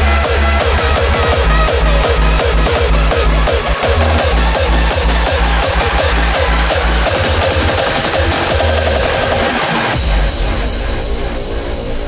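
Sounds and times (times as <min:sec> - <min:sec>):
synth melody: 0:00.0 - 0:10.0
hard distorted kick drums: 0:00.0 - 0:12.0
hardstyle dance music: 0:00.0 - 0:12.0
held low synth notes: 0:00.0 - 0:12.0.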